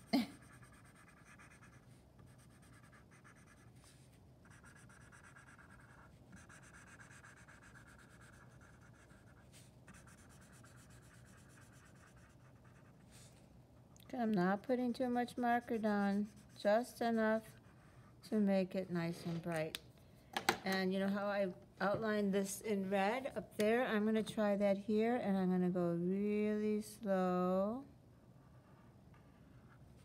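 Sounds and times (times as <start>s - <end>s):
marker scratching on paper: 0.4s - 13.4s, 14.7s - 18.0s.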